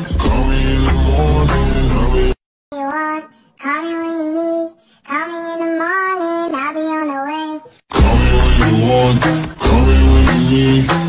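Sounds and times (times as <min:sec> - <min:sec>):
backing music: 0:00.0 - 0:02.4, 0:07.9 - 0:11.0
high voice singing: 0:00.2 - 0:11.0.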